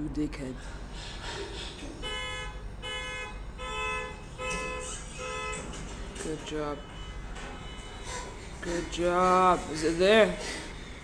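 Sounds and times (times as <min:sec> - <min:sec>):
car alarm honking: 0:02.0 - 0:09.4.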